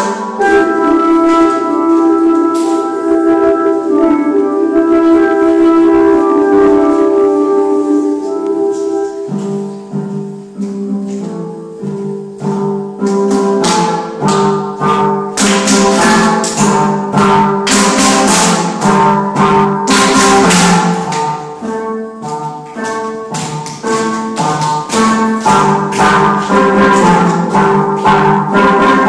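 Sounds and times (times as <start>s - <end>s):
steel pan melody: 0.0s - 29.0s
sharp percussive strikes: 9.2s - 29.0s
hand claps: 13.0s - 14.6s, 15.3s - 19.1s, 19.9s - 29.0s.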